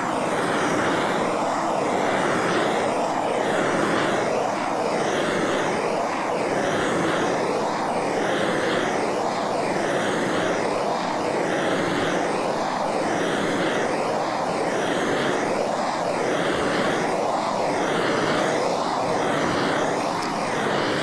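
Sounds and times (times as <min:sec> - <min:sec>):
gas torch roaring: 0:00.0 - 0:21.0.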